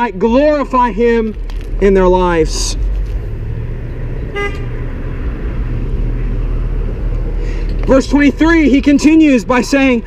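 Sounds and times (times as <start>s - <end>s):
steady low rumble: 0.0s - 10.0s
short car horn beep: 4.3s - 4.7s.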